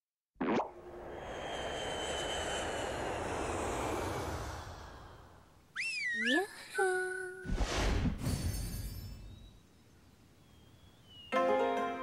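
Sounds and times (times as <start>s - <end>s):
broad whoosh: 0.8s - 5.6s.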